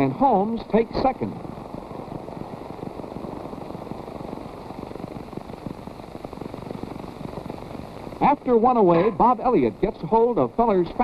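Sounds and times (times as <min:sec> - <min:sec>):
old film soundtrack crackle: 0:00.0 - 0:11.0.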